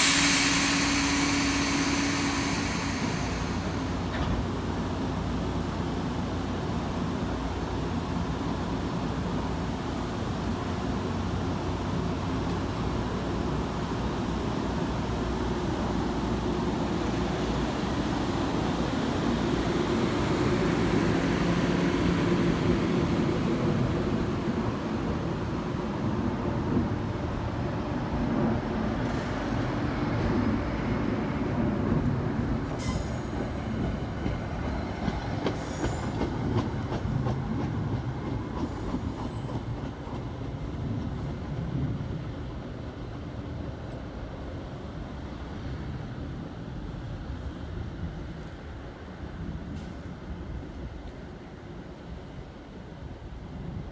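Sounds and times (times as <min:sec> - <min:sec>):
train wheels rumbling on rail: 0:00.0 - 0:53.9.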